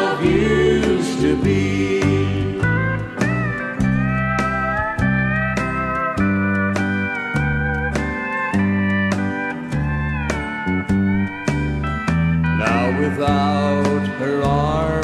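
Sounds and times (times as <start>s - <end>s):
steady beat: 0.0s - 13.6s
alternating bass line: 0.0s - 15.0s
steel guitar sliding notes: 0.0s - 15.0s.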